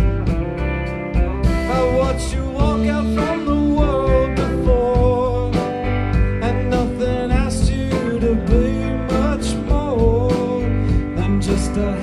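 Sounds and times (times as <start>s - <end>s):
live country-rock band: 0.0s - 12.0s.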